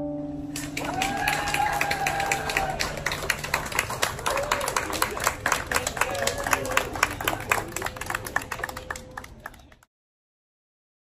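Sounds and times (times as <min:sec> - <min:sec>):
small audience applauding: 0:00.5 - 0:09.9.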